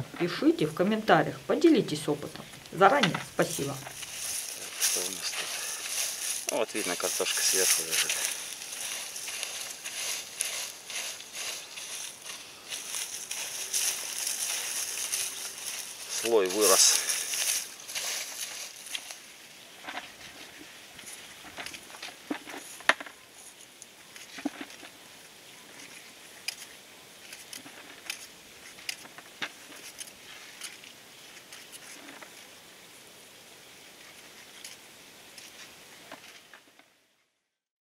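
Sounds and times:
dry plant tops rustling and crackling: 0.0s - 37.0s.

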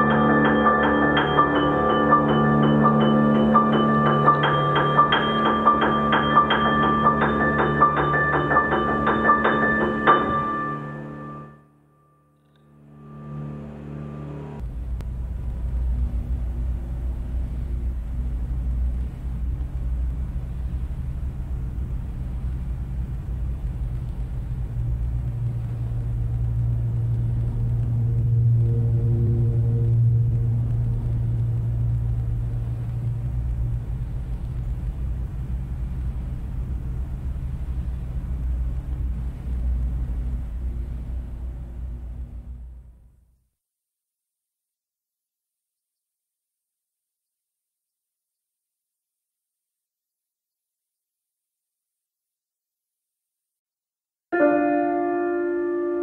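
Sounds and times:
low bass piano rumble: 0.0s - 11.5s, 12.7s - 43.1s.

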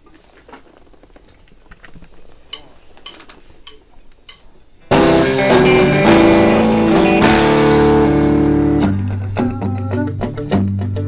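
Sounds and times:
faint shuffling: 0.0s - 4.9s
count-in clicks: 2.5s - 4.5s
band playing: 4.9s - 11.0s.

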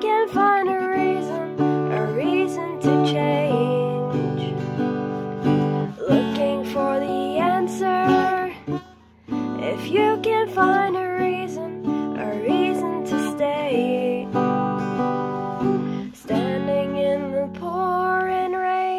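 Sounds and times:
acoustic guitar strummed: 0.0s - 18.9s
person singing: 0.0s - 18.9s.

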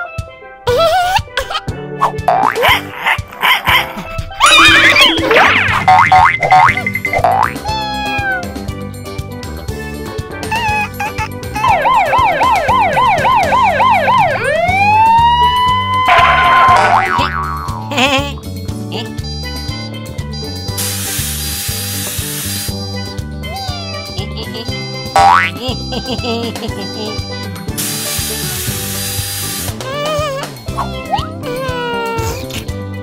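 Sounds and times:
cartoon soundtrack music: 0.0s - 21.2s, 22.6s - 33.0s
warbling siren sound effect: 4.4s - 5.6s, 11.6s - 17.0s
boing-like pitch glides: 4.6s - 7.6s, 16.1s - 17.9s.

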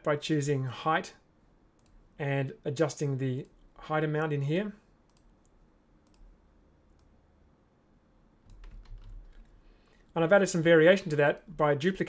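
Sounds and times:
computer mouse clicks: 1.8s - 2.0s, 5.1s - 6.3s.

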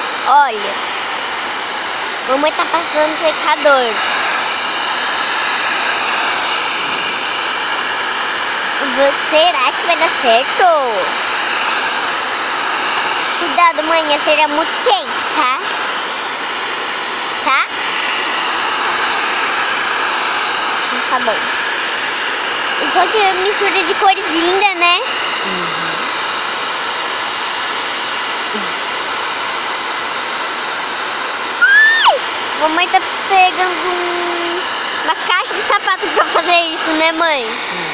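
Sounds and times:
hair dryer running: 0.0s - 37.9s.

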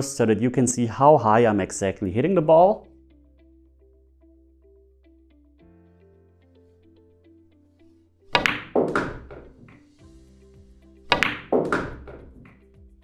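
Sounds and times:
background music: 0.0s - 13.0s
billiard balls clacking: 8.4s - 9.9s, 11.1s - 12.6s
cue striking ball: 8.4s - 9.9s, 11.1s - 12.6s.

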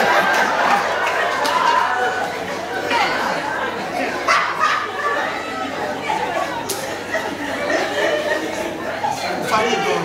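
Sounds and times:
actors talking on stage: 0.9s - 10.0s.

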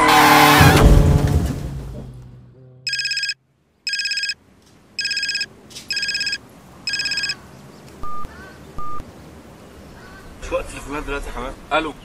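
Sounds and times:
trilling phone ringtone: 2.9s - 4.4s, 5.0s - 7.4s, 8.0s - 9.0s
short single-pitch beeps: 8.0s - 9.0s.

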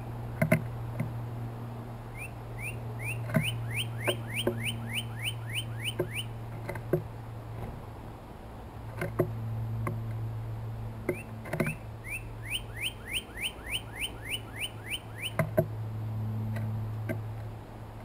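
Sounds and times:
bird singing whistled notes: 2.1s - 6.4s, 11.1s - 15.4s
bird pecking on wooden feeder: 5.9s - 7.1s.

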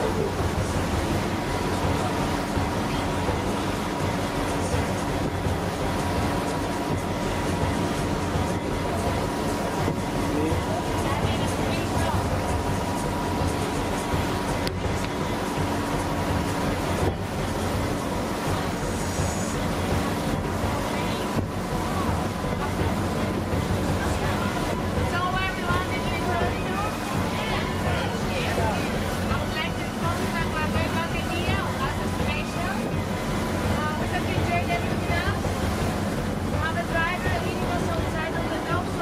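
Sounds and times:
low rumble: 0.0s - 39.0s
sea water rushing past boat: 0.0s - 39.0s.

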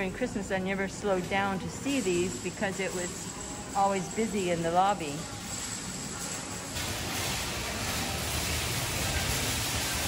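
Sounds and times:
indoor public space ambience: 0.0s - 10.0s.

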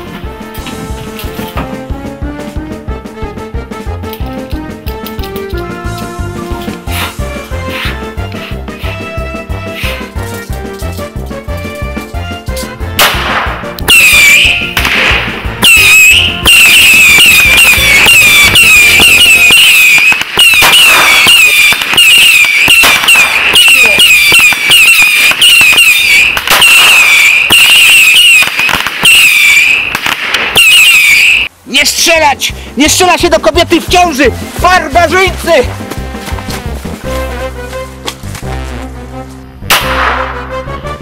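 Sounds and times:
firework crackling bangs: 13.0s - 31.5s
firework whistles: 13.9s - 14.8s, 15.6s - 31.5s.

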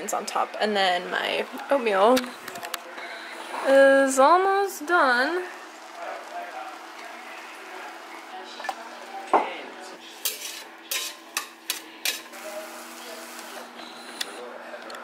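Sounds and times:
faint sizzling: 0.0s - 14.6s
spatula scraping metal frying pan: 10.1s - 12.3s.

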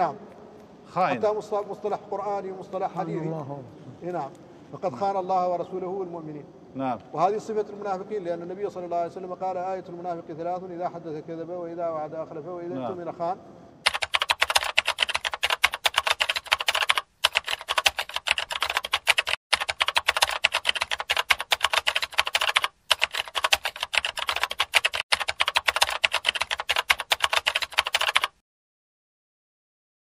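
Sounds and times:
keyboard typing clicks: 13.9s - 28.4s.

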